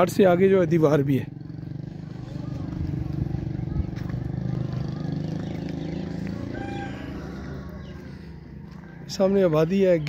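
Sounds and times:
engine running at low revs: 0:01.3 - 0:09.1.

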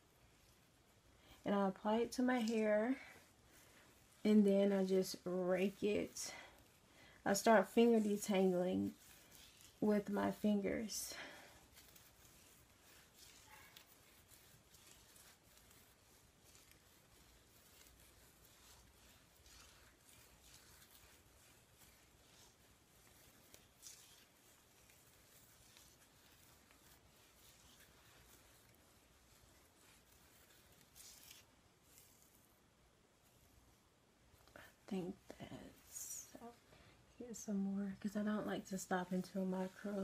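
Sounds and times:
fingers rustling through wet hair: 0:00.0 - 0:40.0.

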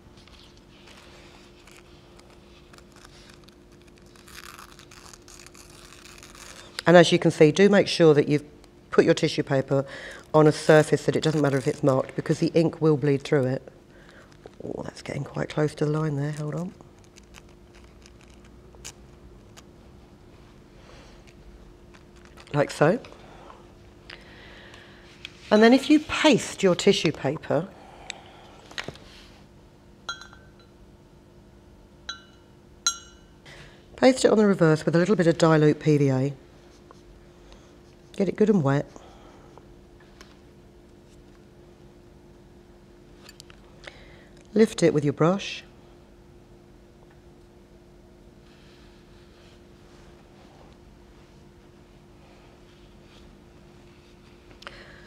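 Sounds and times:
faint steady hum: 0:00.0 - 0:55.0
tissue paper tearing: 0:00.8 - 0:06.8, 0:16.3 - 0:19.0
paintbrush clinking on pot rim: 0:30.1 - 0:30.7.

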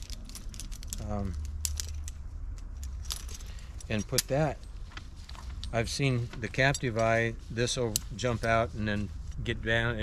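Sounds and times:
carabiner clinking: 0:00.0 - 0:09.6.

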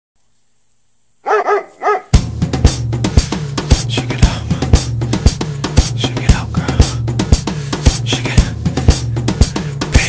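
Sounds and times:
high-pitched dog barks: 0:01.2 - 0:02.2.

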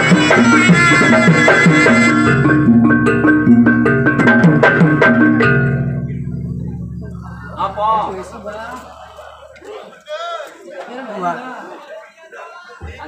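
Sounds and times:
gamelan music: 0:00.0 - 0:09.6
low ringing tone: 0:05.5 - 0:09.0.

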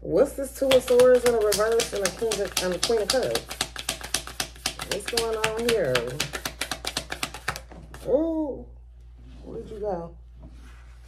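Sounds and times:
cards being shuffled: 0:00.7 - 0:08.1.

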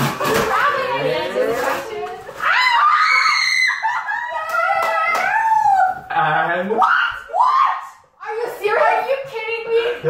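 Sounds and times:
people screaming and squealing: 0:02.3 - 0:06.1, 0:06.8 - 0:08.0.

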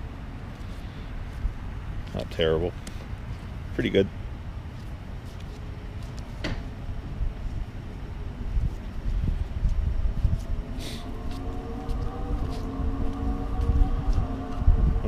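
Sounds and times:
machine hum: 0:02.7 - 0:15.0
trading cards flipped by hand: 0:04.8 - 0:06.4
wind rumble on microphone: 0:06.4 - 0:15.0.

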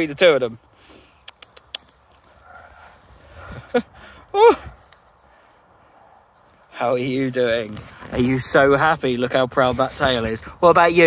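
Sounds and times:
faint rustling in grass: 0:00.2 - 0:11.0
sharp clicks: 0:01.2 - 0:02.1.

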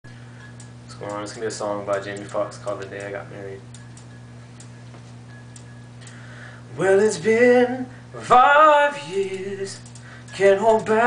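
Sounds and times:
steady low hum: 0:00.1 - 0:11.0.

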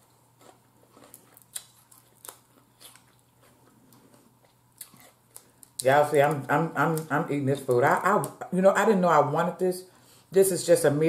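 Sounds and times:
chewing sounds: 0:00.4 - 0:07.1
crab shells cracking: 0:01.0 - 0:03.2.

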